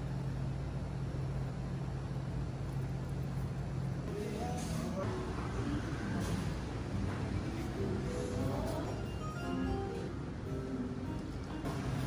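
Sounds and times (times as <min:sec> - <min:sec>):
low hum of kitchen machinery: 0:00.0 - 0:12.0.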